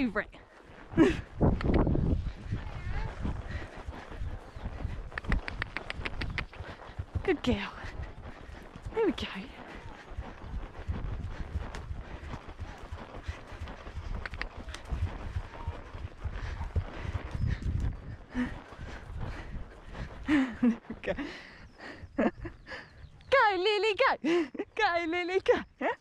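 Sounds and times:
horse hoofbeats on grass: 0.5 - 20.8.

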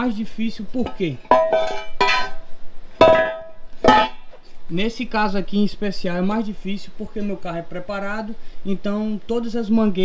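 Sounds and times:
metal part clanking on concrete: 0.8 - 4.3.

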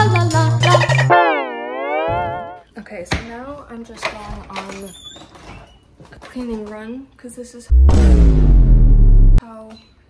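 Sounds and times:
background music: 0.0 - 2.6.

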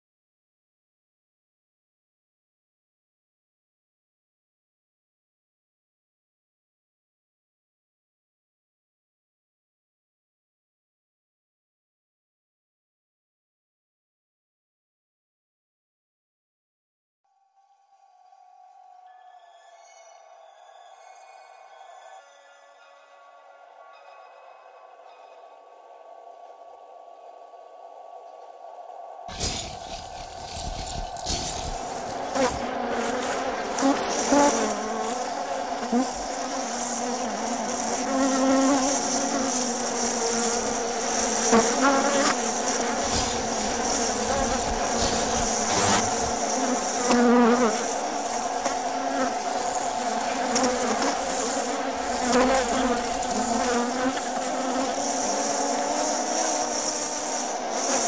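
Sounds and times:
faint drone of held tones: 17.3 - 58.0
dense insect-like buzzing: 28.9 - 58.0.

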